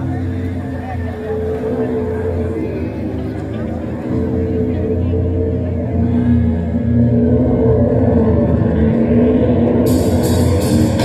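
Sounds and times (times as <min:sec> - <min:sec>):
low bass drone: 0:00.0 - 0:11.0.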